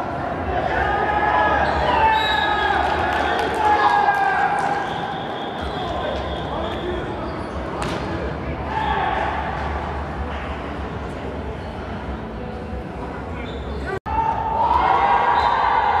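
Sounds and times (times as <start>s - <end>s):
players shouting in a hall: 0.0s - 7.3s, 8.4s - 10.8s, 13.4s - 16.0s.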